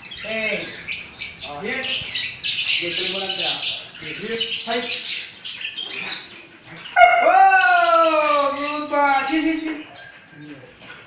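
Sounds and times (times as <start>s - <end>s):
dog howling: 7.0s - 8.9s.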